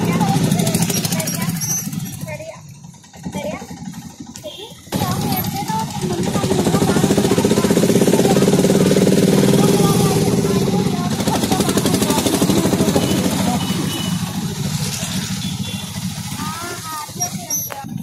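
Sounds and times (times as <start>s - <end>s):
motorcycle engine running: 0.0s - 18.0s
street traffic: 0.0s - 18.0s.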